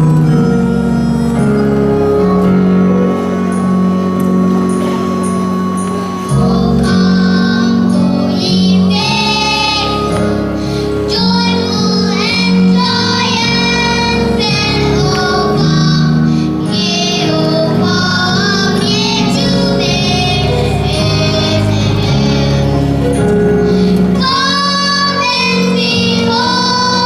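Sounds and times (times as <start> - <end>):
instrumental accompaniment: 0.0 - 27.0
girls singing into a microphone: 5.7 - 27.0.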